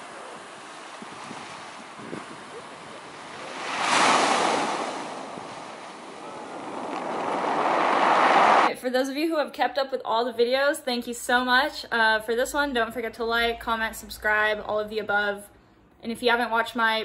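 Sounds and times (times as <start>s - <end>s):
surf breaking on pebbly shore: 0.0s - 8.7s.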